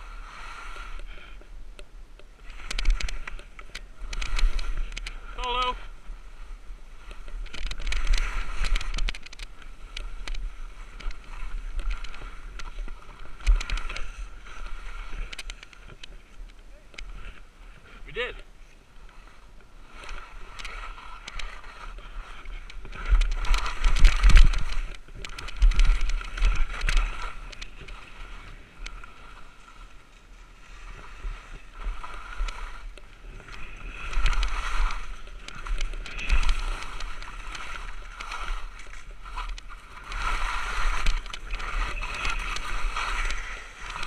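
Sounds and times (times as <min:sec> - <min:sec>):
skis scraping over snow: 0:00.0 - 0:01.5, 0:02.3 - 0:44.0.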